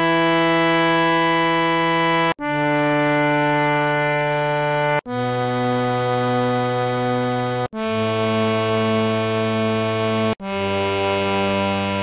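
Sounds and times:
harmonium holding a steady note: 0:00.0 - 0:12.0.

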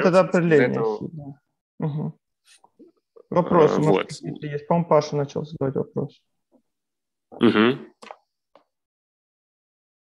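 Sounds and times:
voice: 0:03.2 - 0:06.2, 0:07.4 - 0:07.9.

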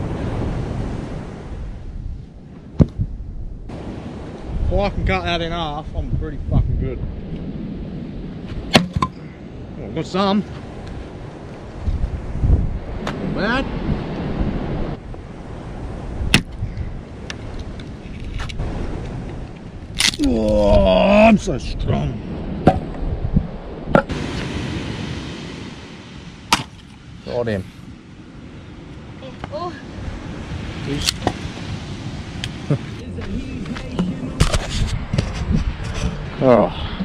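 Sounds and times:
axe splitting log: 0:08.7 - 0:09.2, 0:26.5 - 0:26.8
axe striking log: 0:08.7 - 0:09.2, 0:16.3 - 0:16.6, 0:22.6 - 0:22.9, 0:23.9 - 0:24.1, 0:26.5 - 0:26.9.

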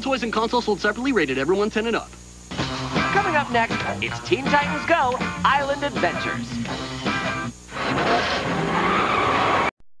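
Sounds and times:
car tyres screeching: 0:07.8 - 0:09.7.

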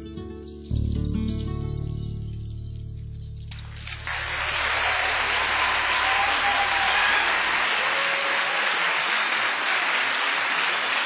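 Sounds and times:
audience applauding: 0:03.6 - 0:11.0.

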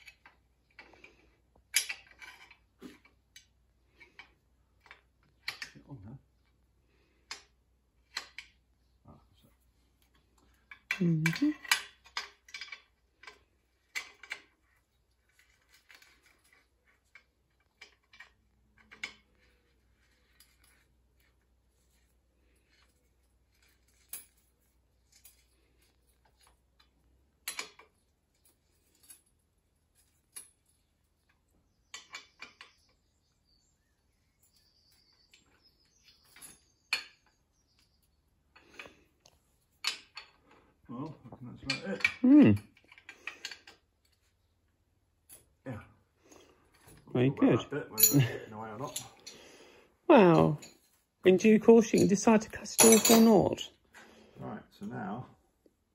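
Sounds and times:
spanner clinking on metal bolts: 0:01.6 - 0:05.8, 0:10.7 - 0:14.6, 0:26.3 - 0:28.1, 0:48.0 - 0:49.4, 0:51.8 - 0:53.7.

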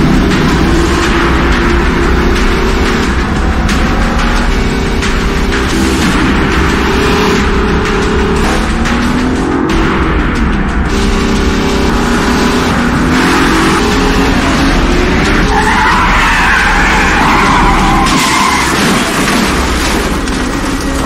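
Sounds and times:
car engines running hard: 0:00.0 - 0:21.0
tire squeal: 0:13.1 - 0:19.7.

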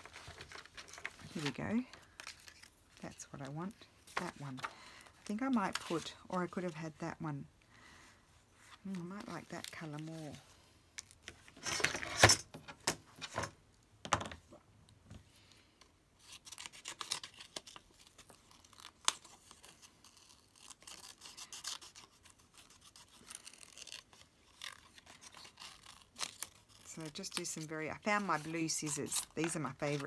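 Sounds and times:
paper rustling and crinkling: 0:00.0 - 0:03.4, 0:16.2 - 0:30.0.

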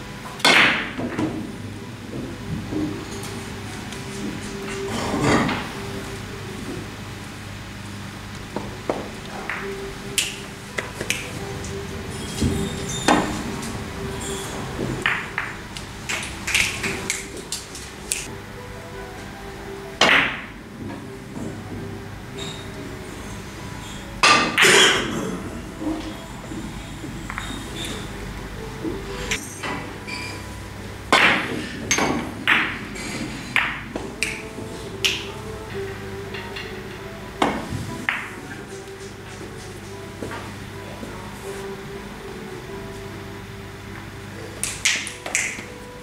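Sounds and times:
cue striking ball: 0:00.3 - 0:03.3, 0:08.5 - 0:18.3, 0:20.0 - 0:21.8, 0:24.2 - 0:26.2, 0:31.0 - 0:40.5
billiard balls clicking: 0:08.3 - 0:13.8, 0:31.1 - 0:39.9.

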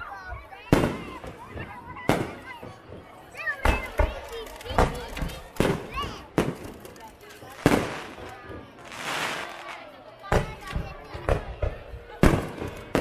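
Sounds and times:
fireworks booming: 0:00.7 - 0:04.2, 0:04.8 - 0:06.9, 0:07.5 - 0:13.0.

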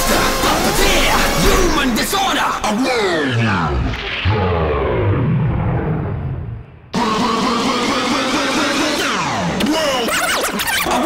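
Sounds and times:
distorted synth wash: 0:00.0 - 0:11.0
rising synth sweeps: 0:01.3 - 0:09.3.

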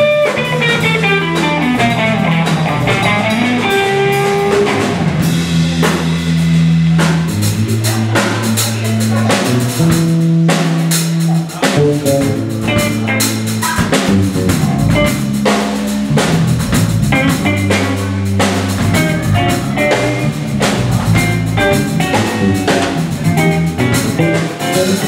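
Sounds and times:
drum kit steady beat: 0:00.0 - 0:25.0
electric guitar lines: 0:00.0 - 0:25.0
sustained electric bass notes: 0:00.0 - 0:25.0.

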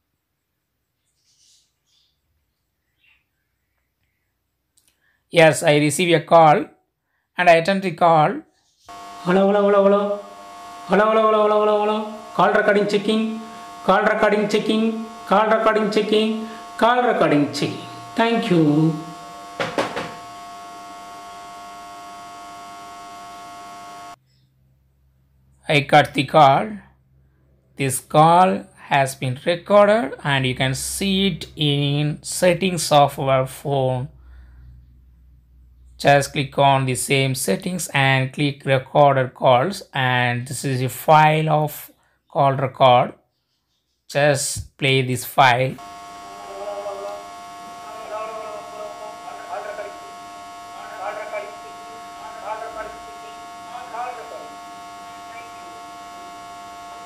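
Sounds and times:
electronic hum: 0:08.9 - 0:24.2, 0:45.5 - 0:57.0
steady high tones: 0:08.9 - 0:24.2, 0:45.7 - 0:57.0
faint voice on phone: 0:46.4 - 0:50.2.

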